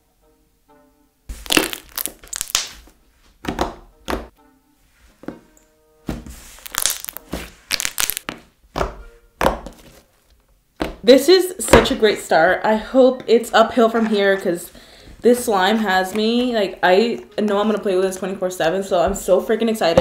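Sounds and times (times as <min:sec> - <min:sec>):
slime squeezed sticky pops: 0:01.3 - 0:02.8, 0:06.6 - 0:08.3.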